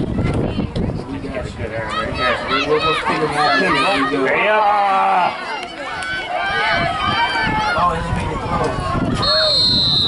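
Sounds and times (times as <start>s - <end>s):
spectators calling and shouting: 0.0s - 10.0s.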